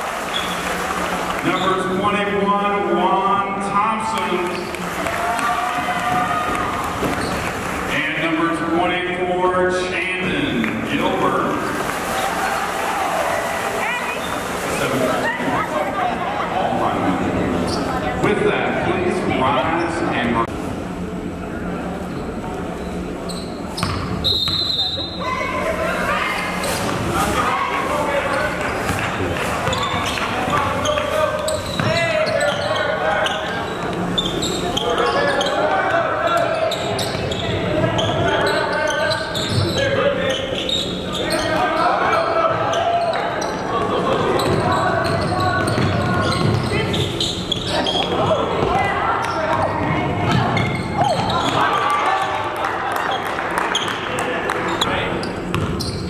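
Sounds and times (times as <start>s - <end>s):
basketball bouncing on hardwood floor: 23.8s - 24.1s, 45.6s - 46.7s, 55.5s - 55.8s.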